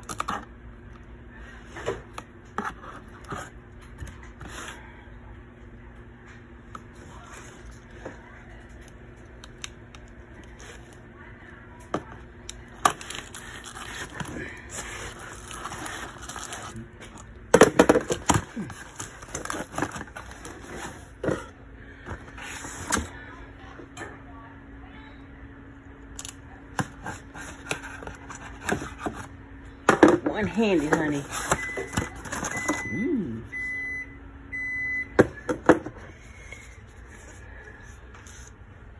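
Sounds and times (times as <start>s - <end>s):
cardboard scraping and tearing: 12.9s - 16.8s.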